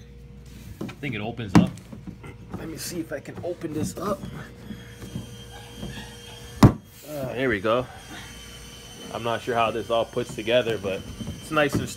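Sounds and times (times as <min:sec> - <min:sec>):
plastic rubbing and knocks: 0:10.2 - 0:11.9.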